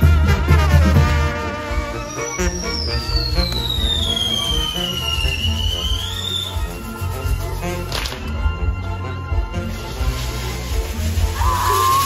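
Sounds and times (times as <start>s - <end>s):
whistling firework: 1.3s - 12.0s.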